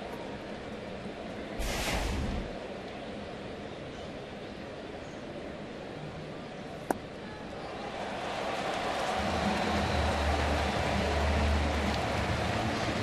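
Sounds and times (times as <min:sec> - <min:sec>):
stadium crowd murmur: 0:00.0 - 0:13.0.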